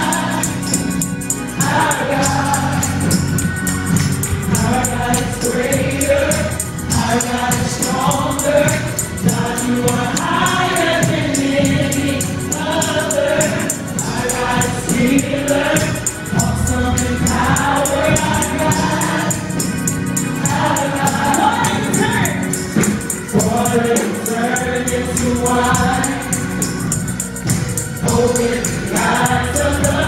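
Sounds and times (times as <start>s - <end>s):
group singing gospel: 0.0s - 30.0s
instrumental backing with beat: 0.0s - 30.0s.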